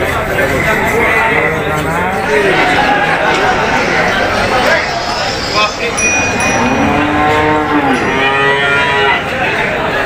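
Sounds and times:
cattle mooing: 6.3 - 9.4.

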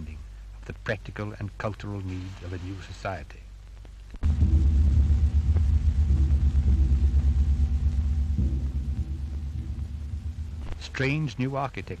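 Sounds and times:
deep rumbling throbbing drone: 4.2 - 11.5.

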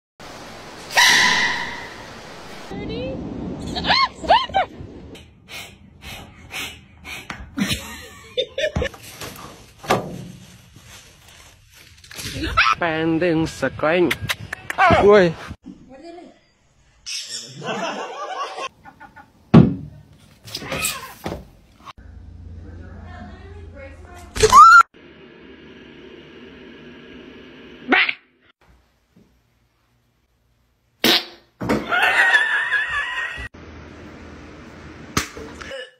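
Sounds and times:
low background hum: 22.0 - 27.8.

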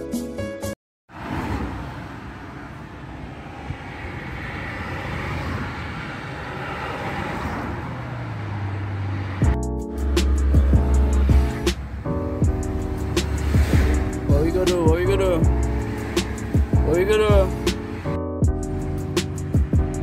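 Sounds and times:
roadside traffic: 1.1 - 20.0
vehicle passing: 1.1 - 20.0
music with heavy bass: 9.4 - 20.0.

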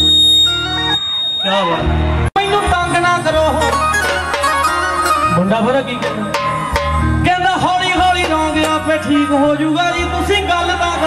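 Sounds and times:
live band music: 0.0 - 10.2.

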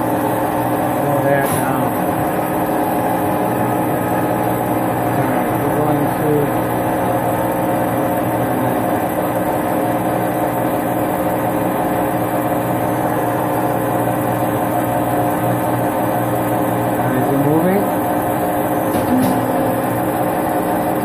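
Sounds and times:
lathe running with steady hum: 0.0 - 21.0.

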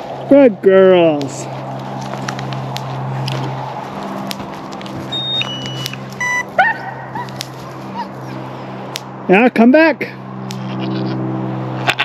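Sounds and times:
short electronic beeps: 5.1 - 6.5
dog yelping: 5.1 - 8.4.

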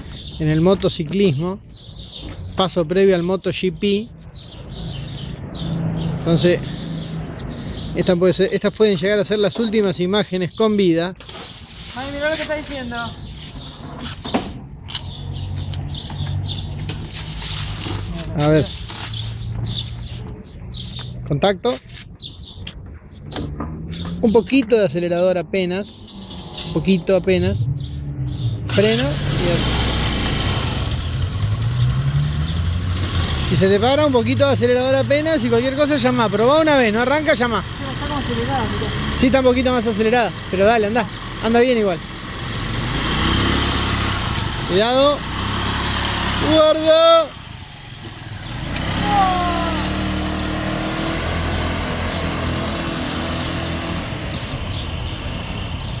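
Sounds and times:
scooter engine pulling away: 27.8 - 55.9
scooter engine idling: 28.9 - 32.7, 36.8 - 39.1, 39.7 - 43.0, 46.1 - 50.1.

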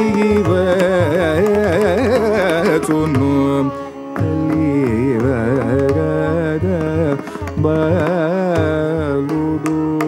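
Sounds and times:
man singing with pitch ornaments: 0.0 - 10.0
violin: 0.0 - 10.0.

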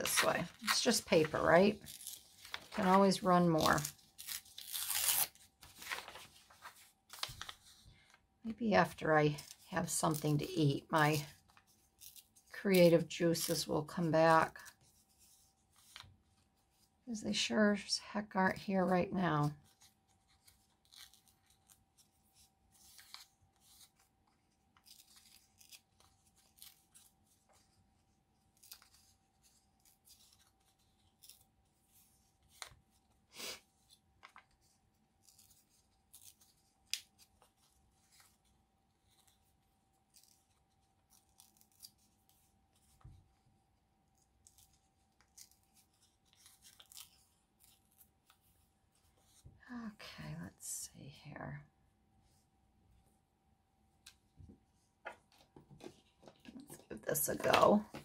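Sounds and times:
paper tearing and rustling: 0.0 - 7.8, 19.6 - 27.8, 28.4 - 43.2.

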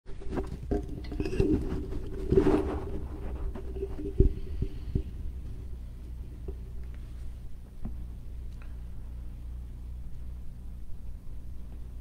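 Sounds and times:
steady low hum: 0.1 - 12.0.

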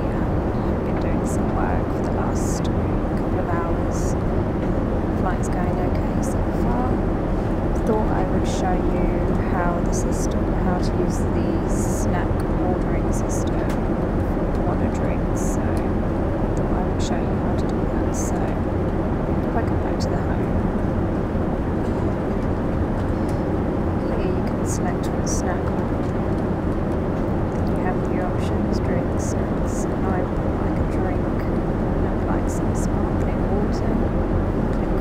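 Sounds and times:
airplane cabin rumble: 0.0 - 35.0.

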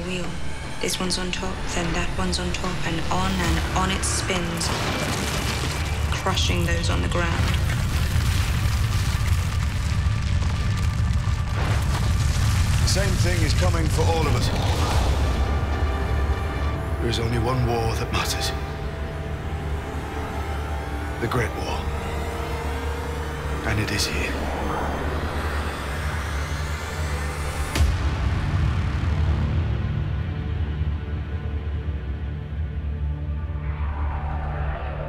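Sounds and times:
deep low rumble: 0.0 - 35.0
film score music: 0.0 - 35.0
swell of noise: 13.0 - 30.4, 32.8 - 35.0
thin rising whine: 33.4 - 35.0.

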